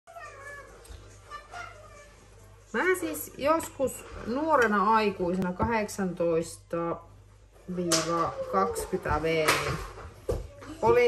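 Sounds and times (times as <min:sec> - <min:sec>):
cat meowing faintly: 0:00.1 - 0:02.3.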